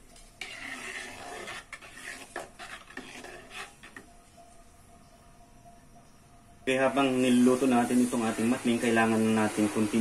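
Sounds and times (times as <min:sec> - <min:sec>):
ladle scraping metal pot: 0:00.4 - 0:04.0
liquid swishing: 0:00.4 - 0:04.0.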